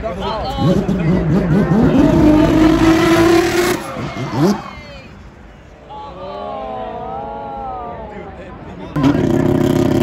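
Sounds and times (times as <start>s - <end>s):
car engine under throttle: 0.6s - 4.6s.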